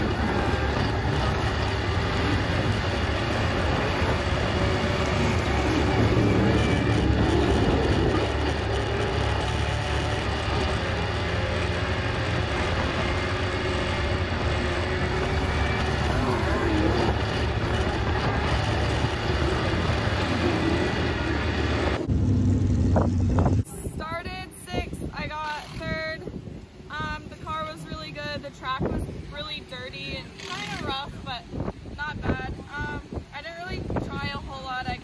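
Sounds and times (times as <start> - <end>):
race car engine at speed: 0.0 - 23.9
lower engine sound: 0.0 - 35.0.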